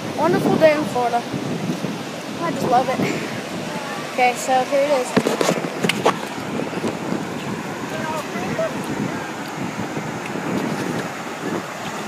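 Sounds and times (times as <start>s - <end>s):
surf breaking on beach: 0.0s - 12.0s
wind buffeting microphone: 0.0s - 12.0s.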